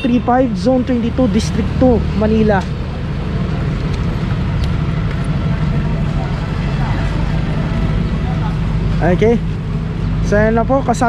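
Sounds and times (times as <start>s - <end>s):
street traffic: 0.0s - 11.0s
vehicle engine idling: 0.0s - 11.0s.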